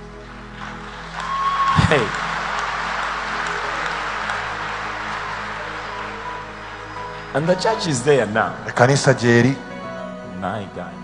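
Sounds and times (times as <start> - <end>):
crowd applauding and cheering: 0.0 - 9.3
soft background music: 0.0 - 11.0.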